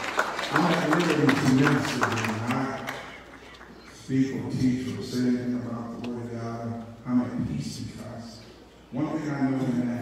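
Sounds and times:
man speaking in large hall: 0.0 - 10.0.

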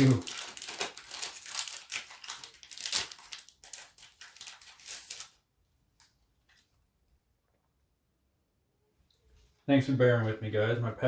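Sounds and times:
foil wrapper crinkling: 0.0 - 6.7.

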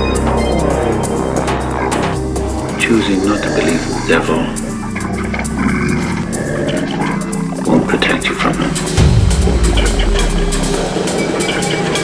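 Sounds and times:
layered synth sounds: 0.0 - 12.0.

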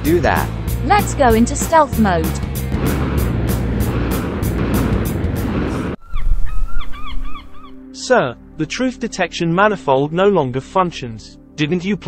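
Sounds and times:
fast beat music: 0.0 - 2.6
cartoon jet engine roar: 1.0 - 6.0.

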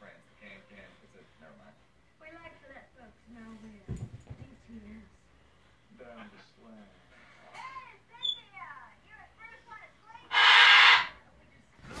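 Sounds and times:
faint television sound: 0.0 - 12.0.

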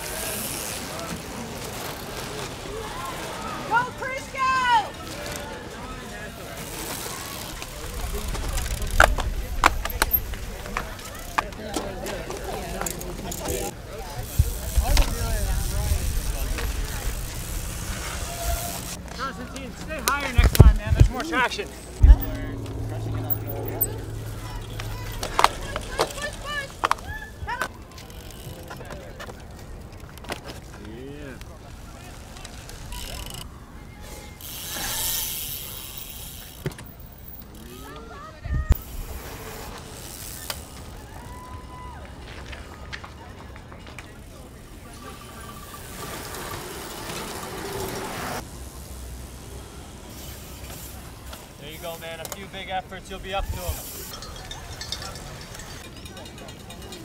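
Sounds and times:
bikes riding past on grass: 0.0 - 29.1, 30.4 - 43.4, 44.0 - 57.0
spectators' voices and calls: 0.0 - 57.0.

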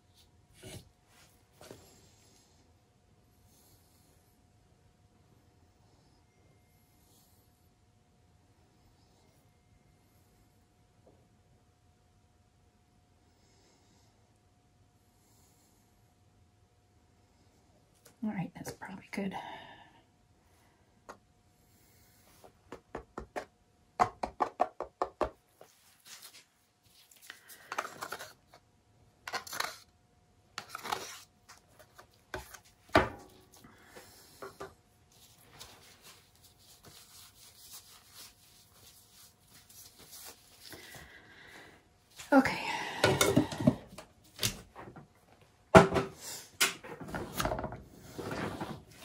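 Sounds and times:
plastic cup tapped and shaken: 22.7 - 25.4
rubbing and scraping of canvas: 35.1 - 40.8.

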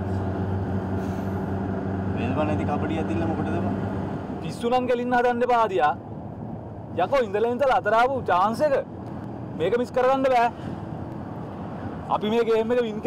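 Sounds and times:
people talking: 2.2 - 3.7.

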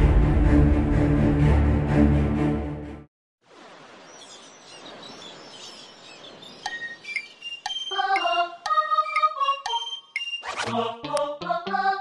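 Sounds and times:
bird-like chirps: 4.0 - 10.5.

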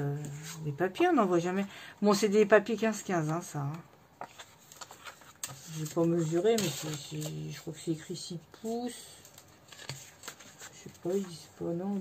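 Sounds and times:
paper rustling with light ticks: 3.2 - 7.6, 8.6 - 11.5.

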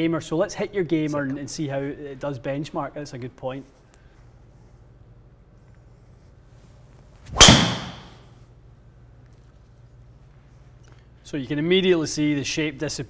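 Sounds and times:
golf club striking ball: 7.3 - 8.2.

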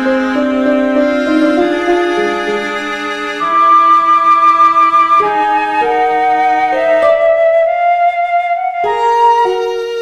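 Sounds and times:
cello: 0.0 - 10.0
flute holding long notes: 0.0 - 10.0
harp: 0.0 - 10.0
viola: 0.0 - 10.0.

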